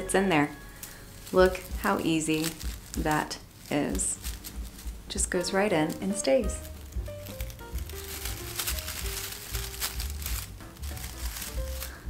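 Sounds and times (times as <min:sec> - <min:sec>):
dried flowers and twigs crackling: 0:00.0 - 0:12.0
soft background music: 0:00.0 - 0:12.0.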